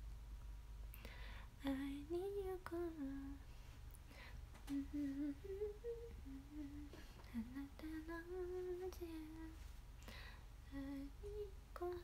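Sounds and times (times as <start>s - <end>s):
woman humming a slow tune: 4.6s - 9.6s, 10.7s - 12.0s.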